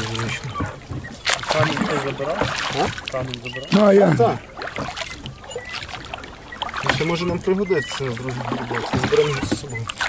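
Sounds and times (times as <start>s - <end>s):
oar blades moving through water: 0.0s - 10.0s
oars knocking in oarlocks: 0.0s - 10.0s.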